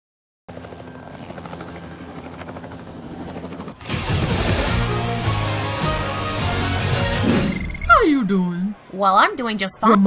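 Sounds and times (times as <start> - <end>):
rapidly pulsing mechanical drone: 0.5 - 5.8.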